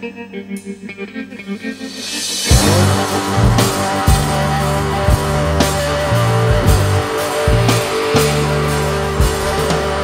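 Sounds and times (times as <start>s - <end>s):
plucked electric guitar notes: 0.0s - 10.0s
steady held low note: 1.5s - 9.2s.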